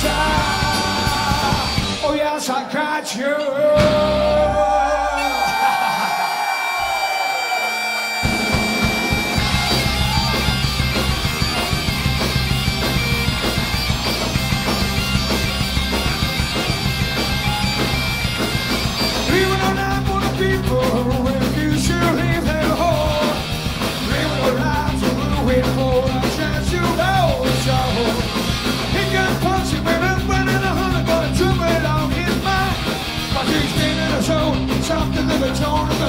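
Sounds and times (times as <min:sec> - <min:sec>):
electric guitars: 0:00.0 - 0:02.2, 0:03.7 - 0:36.0
bass and drums driving beat: 0:00.0 - 0:02.4, 0:03.8 - 0:05.1, 0:08.2 - 0:36.0
bagpipes skirling: 0:04.6 - 0:19.3.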